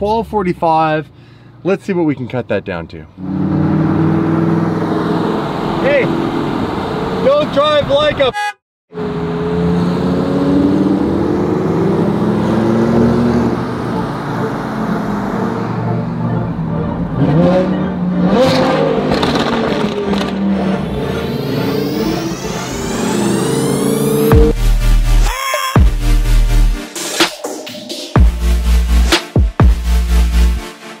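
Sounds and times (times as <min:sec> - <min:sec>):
car engine revving: 0:03.2 - 0:07.9, 0:08.9 - 0:25.3
rising electronic sweep: 0:09.4 - 0:31.0.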